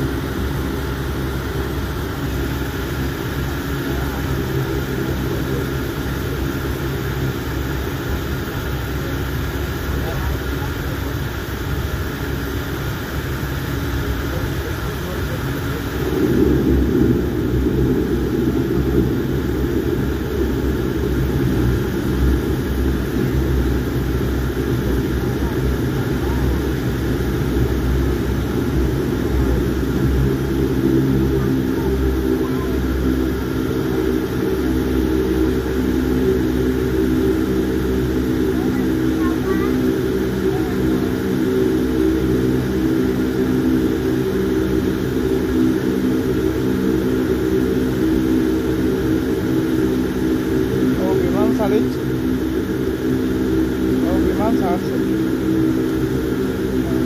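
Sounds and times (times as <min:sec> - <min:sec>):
aircraft cabin rumble: 0:00.0 - 0:57.0
engine hum: 0:00.0 - 0:57.0.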